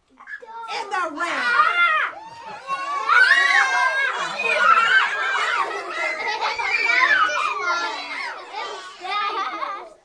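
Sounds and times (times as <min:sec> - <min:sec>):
children squealing and laughing: 0:00.1 - 0:10.0.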